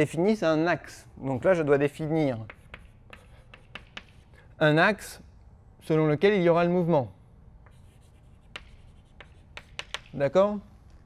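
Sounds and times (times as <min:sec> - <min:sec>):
chalk scratching on blackboard: 0:02.2 - 0:04.4, 0:07.7 - 0:10.2
chalk tapping: 0:02.2 - 0:04.4, 0:07.6 - 0:10.4.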